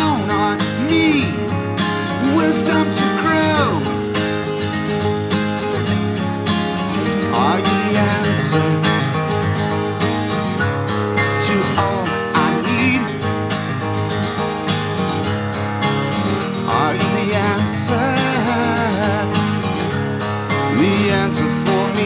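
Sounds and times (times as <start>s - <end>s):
acoustic guitars strumming: 0.0s - 22.0s.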